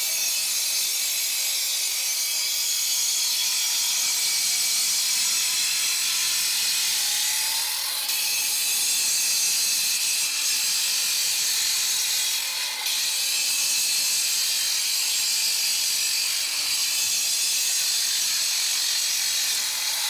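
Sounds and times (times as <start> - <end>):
disc cutter grinding concrete: 0.0 - 20.0.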